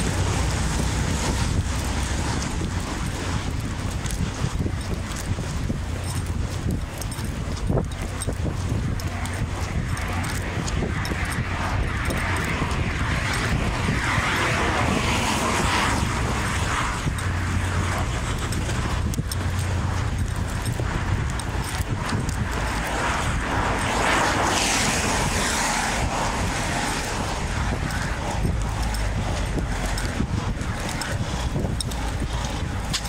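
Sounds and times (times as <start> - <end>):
street noise: 0.0 - 33.0
wind rumble on microphone: 0.0 - 33.0.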